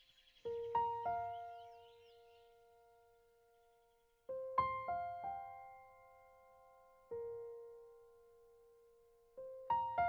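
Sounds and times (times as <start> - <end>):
piano notes: 0.5 - 10.0.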